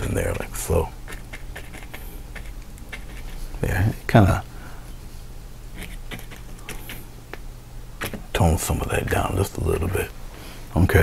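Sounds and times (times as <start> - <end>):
brush dabbing paint on canvas: 0.0 - 4.0, 5.8 - 7.1
low steady hum: 0.0 - 11.0.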